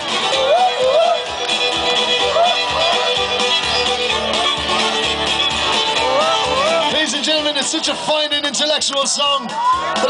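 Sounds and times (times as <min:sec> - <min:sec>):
fiddle playing quick melody: 0:00.0 - 0:09.4.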